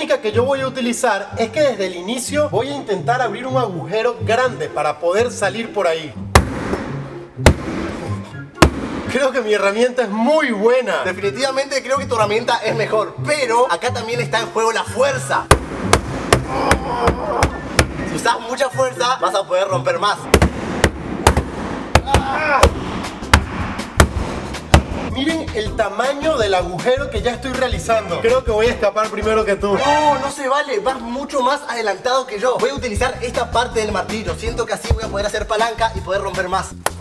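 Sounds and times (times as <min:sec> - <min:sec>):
background music: 0:00.0 - 0:37.0
hatchet blows on wall panel: 0:06.4 - 0:09.2, 0:15.5 - 0:18.1, 0:20.3 - 0:25.2
vocal exclamation: 0:16.4 - 0:17.6, 0:22.0 - 0:22.8.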